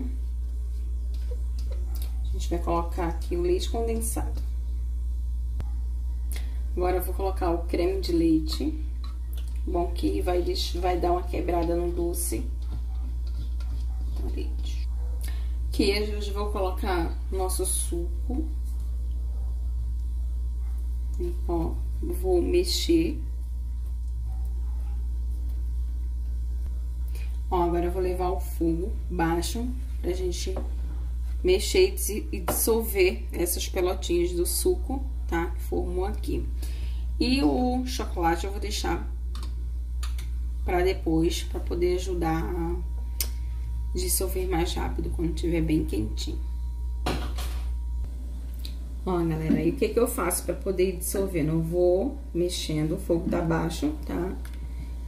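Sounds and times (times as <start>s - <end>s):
spatula stirring in saucepan: 0.0s - 1.9s, 8.0s - 14.9s
steady low hum: 0.0s - 55.0s.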